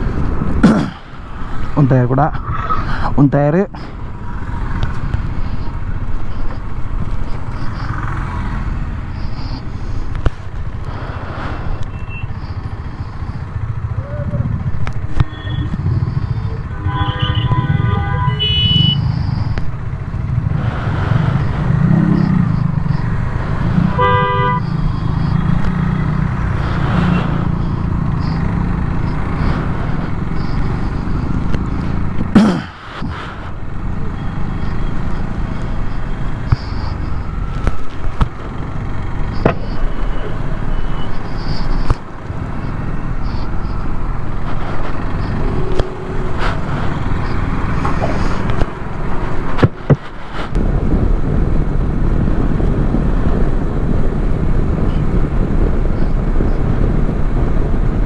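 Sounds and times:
road and wind noise: 0.0s - 58.0s
vehicle horns honking: 15.2s - 19.1s, 23.8s - 25.2s
motorcycle engine running: 21.4s - 32.4s.

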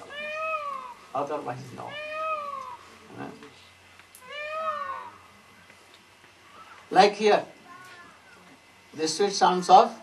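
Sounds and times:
peacock call: 4.2s - 5.3s, 6.4s - 6.8s.

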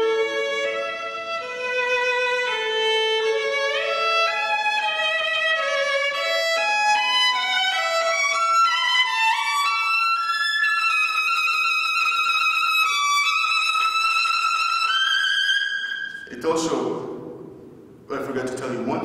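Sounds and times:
solo violin: 0.0s - 16.3s.

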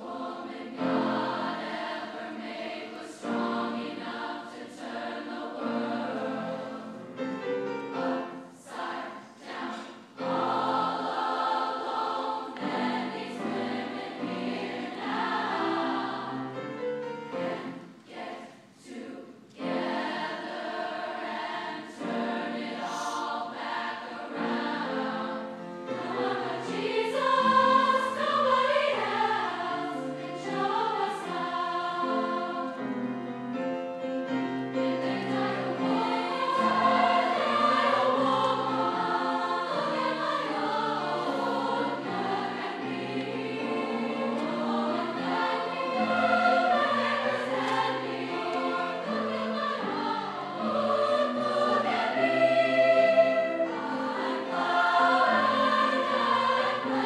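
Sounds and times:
choir singing: 0.0s - 57.0s.

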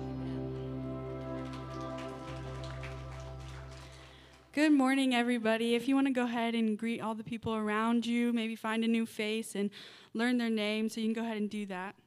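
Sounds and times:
band holding a ringing chord: 0.0s - 3.8s
low bass note: 0.0s - 4.0s.

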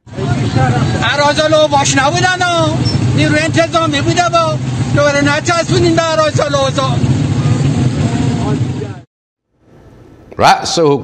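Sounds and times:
traffic running: 0.0s - 10.4s
people's voices: 0.1s - 9.1s.

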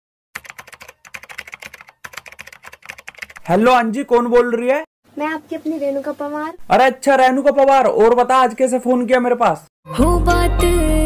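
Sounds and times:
computer keyboard typing: 0.4s - 3.5s.

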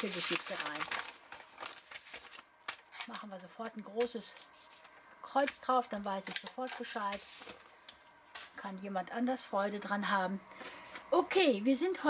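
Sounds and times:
paper envelope rustling: 0.0s - 8.5s.

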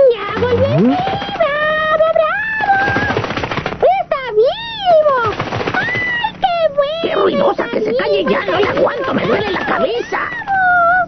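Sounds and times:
cartoon voice warbling: 0.4s - 1.2s
fast rattling clicks: 2.6s - 3.8s, 5.2s - 6.2s.

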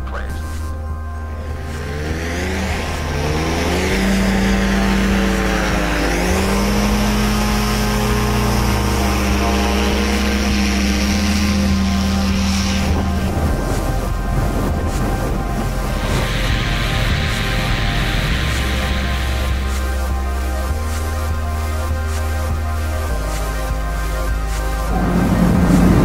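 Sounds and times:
low background music: 0.0s - 26.0s
paramotor engine and propeller revving: 0.6s - 26.0s.

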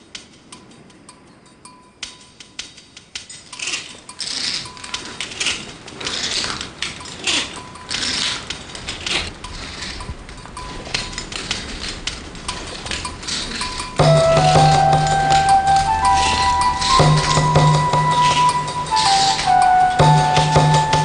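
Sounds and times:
metal ladder clinking: 2.1s - 21.0s
rough rustling: 3.2s - 21.0s.

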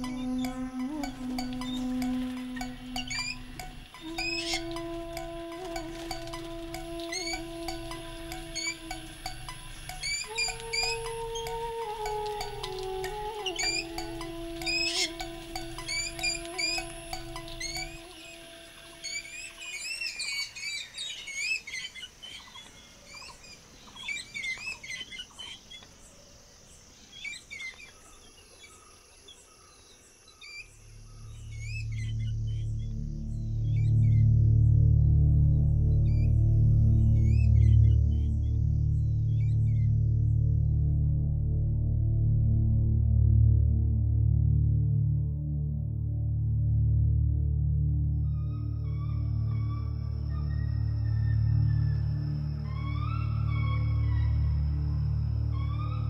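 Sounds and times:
low ambient music: 0.0s - 19.5s, 31.1s - 56.0s
slow film music: 0.0s - 20.4s, 31.1s - 56.0s
small birds chirping: 0.0s - 34.2s.

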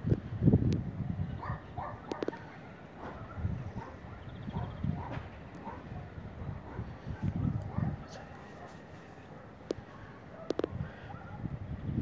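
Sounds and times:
dog barking: 1.4s - 11.5s
low rumbling on microphone: 3.0s - 8.6s.

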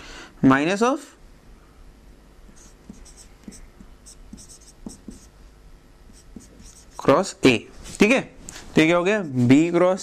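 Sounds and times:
marker squeaking on whiteboard: 2.5s - 5.3s, 6.1s - 7.1s
marker tapping on whiteboard: 2.5s - 5.3s, 6.2s - 6.9s.

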